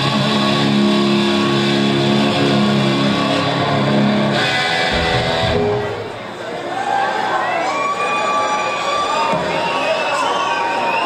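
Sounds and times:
electric guitar ringing chords: 0.0s - 6.2s.

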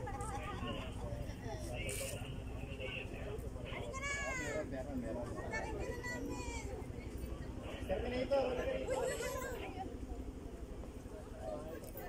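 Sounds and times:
low steady rumble: 0.0s - 12.0s
people talking: 0.0s - 12.0s.

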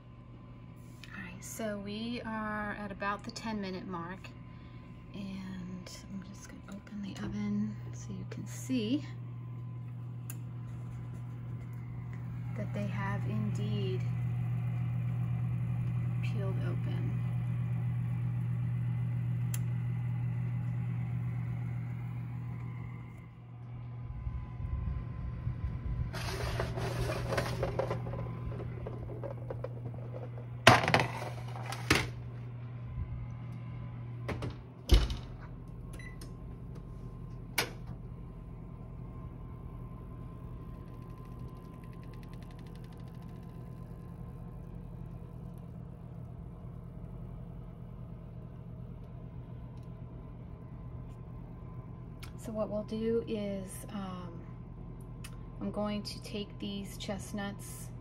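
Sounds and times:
oven humming: 0.0s - 58.0s
metal baking sheet clanking: 26.2s - 29.4s.

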